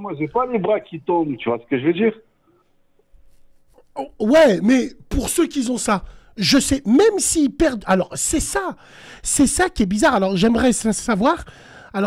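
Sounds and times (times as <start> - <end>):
men talking on radio: 0.0 - 2.3.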